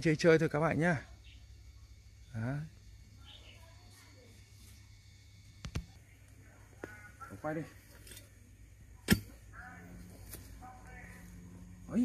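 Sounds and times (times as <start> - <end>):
spade knocking into hard soil: 9.0 - 9.4.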